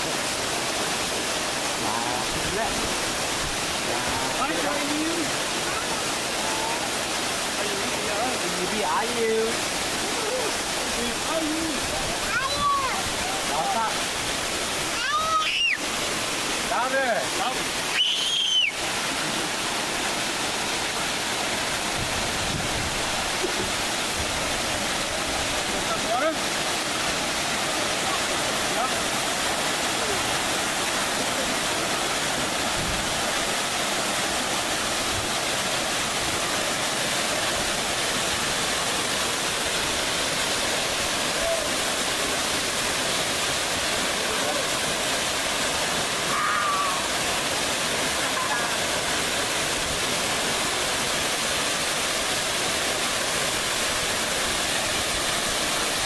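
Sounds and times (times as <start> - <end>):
water pouring over boulders: 0.0 - 56.0.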